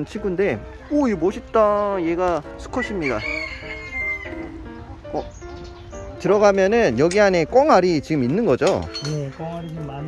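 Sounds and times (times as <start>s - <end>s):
background music: 0.0s - 10.0s
rooster crowing: 2.7s - 4.6s.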